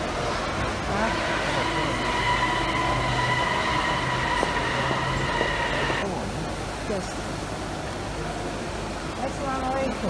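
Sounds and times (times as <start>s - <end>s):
taxi pulling in: 0.0s - 6.1s
traffic noise: 0.0s - 10.0s.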